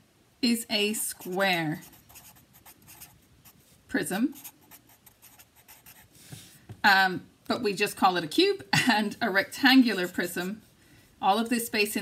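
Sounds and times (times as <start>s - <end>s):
marker writing on paper: 1.1s - 3.2s, 4.3s - 6.1s.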